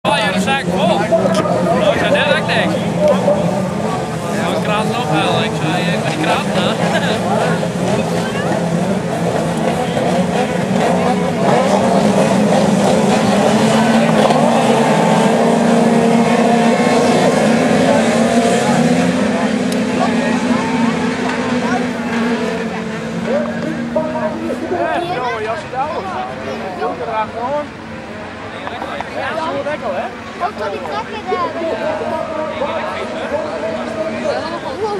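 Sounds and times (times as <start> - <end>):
race car engines revving: 0.0 - 34.9.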